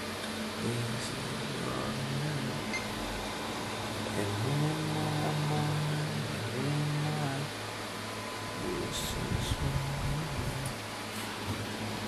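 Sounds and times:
computer case fans whooshing: 0.0 - 12.0
low pitched hum: 0.0 - 12.0.

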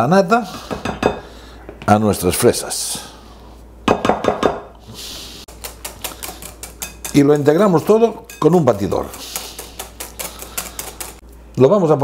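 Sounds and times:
quick clinks of stirring: 5.5 - 7.5.

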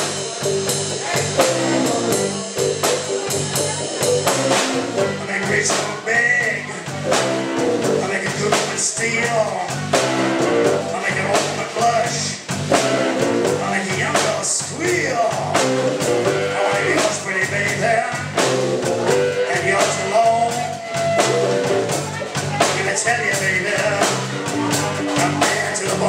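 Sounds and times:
drum kit steady beat: 0.0 - 26.0
electric bass line: 0.0 - 26.0
electric guitar: 0.0 - 26.0.

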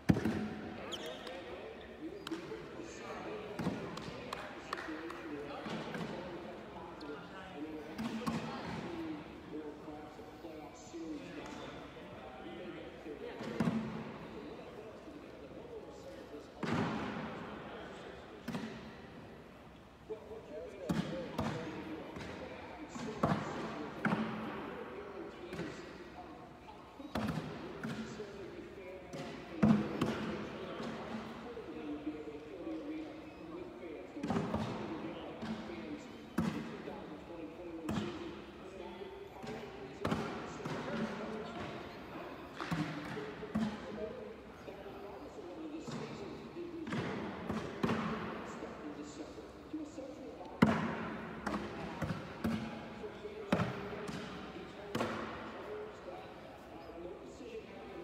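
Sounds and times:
echoing voices in a hall: 0.0 - 58.0.

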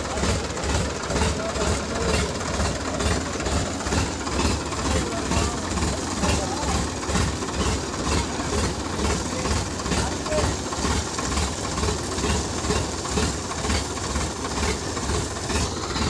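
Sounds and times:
diesel tractor engine idling: 0.0 - 16.0.

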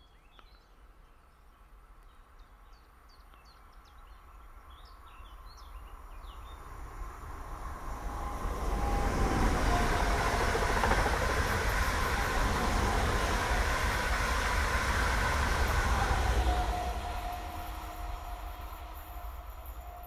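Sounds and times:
train passing rail noise: 5.0 - 20.0.

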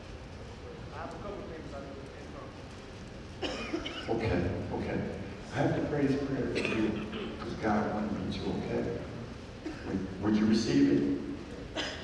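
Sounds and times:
person coughing: 3.4 - 4.1, 6.5 - 7.4, 11.7 - 12.0
man speaking: 4.0 - 11.7.

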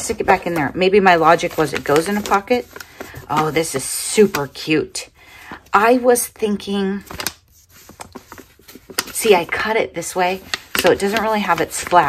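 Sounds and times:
paper envelope crinkling: 0.0 - 4.4, 7.0 - 12.0.

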